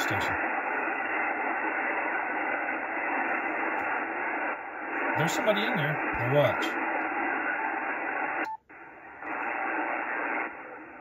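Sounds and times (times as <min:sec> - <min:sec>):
radio band noise hiss: 0:00.0 - 0:11.0.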